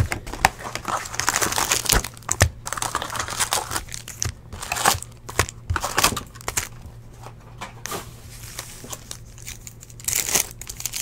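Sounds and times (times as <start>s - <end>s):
plastic wrappers crinkling: 0.0s - 6.8s, 8.4s - 11.0s.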